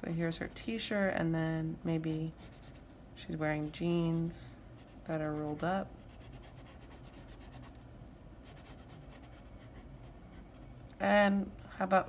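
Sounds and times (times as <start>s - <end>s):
pencil scratching on paper: 2.0s - 2.8s, 3.4s - 7.8s, 8.4s - 10.7s.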